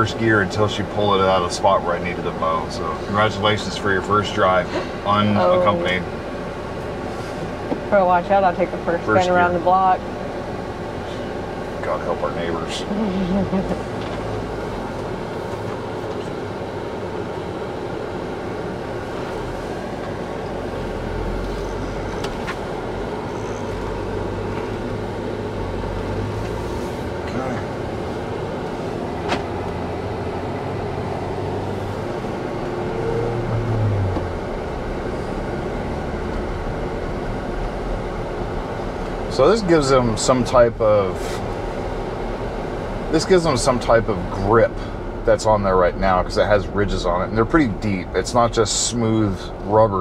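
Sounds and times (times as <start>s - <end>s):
car engine and road noise: 0.0s - 50.0s.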